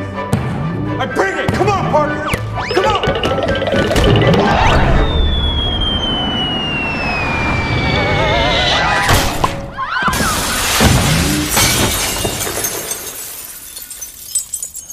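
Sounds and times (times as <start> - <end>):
cartoon whistle sliding down: 4.2 - 9.1
glass backboard shattering: 10.1 - 14.9
glass tinkling: 11.6 - 14.9.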